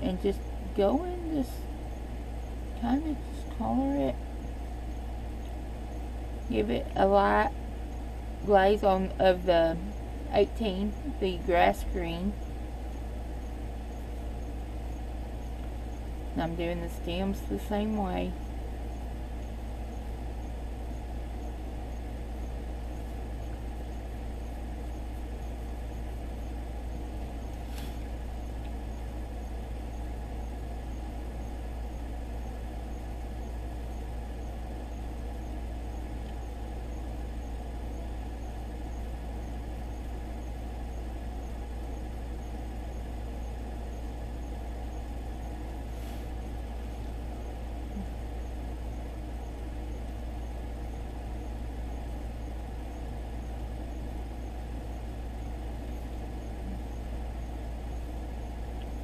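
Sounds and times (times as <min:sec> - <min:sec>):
low room hum: 0:00.0 - 0:59.0.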